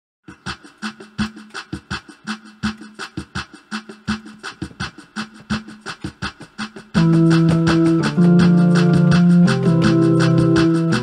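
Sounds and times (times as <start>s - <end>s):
drums playing steady beat: 0.2s - 11.0s.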